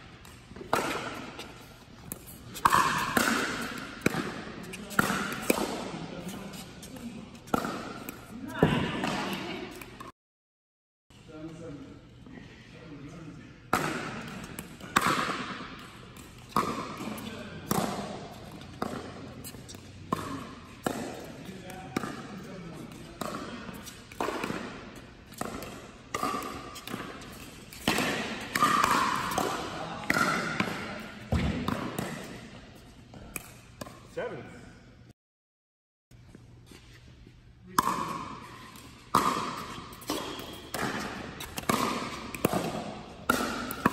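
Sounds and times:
ball bouncing on court: 0:00.2 - 0:09.9, 0:13.7 - 0:32.4, 0:37.7 - 0:43.9.

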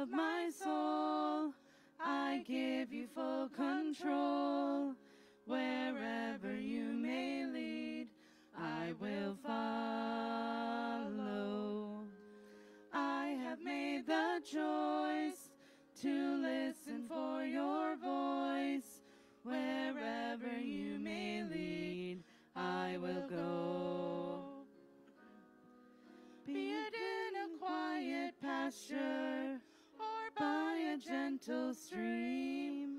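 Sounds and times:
voices singing worship song: 0:00.0 - 0:24.8, 0:26.4 - 0:32.9.

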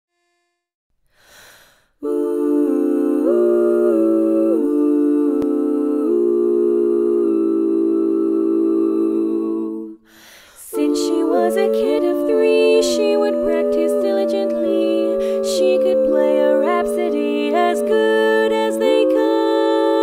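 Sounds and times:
women humming in harmony: 0:10.7 - 0:20.0.

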